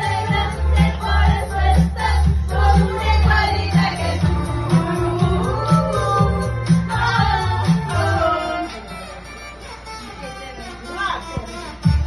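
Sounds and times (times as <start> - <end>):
heavy bass beat: 0.0 - 8.2
woman singing into microphone: 0.0 - 9.0
amplified backing music: 0.0 - 12.0.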